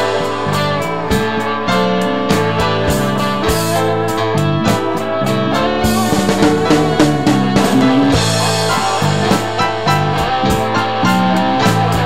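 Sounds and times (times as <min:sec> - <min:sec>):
drums and cymbals: 0:00.0 - 0:12.0
rock band music: 0:00.0 - 0:12.0.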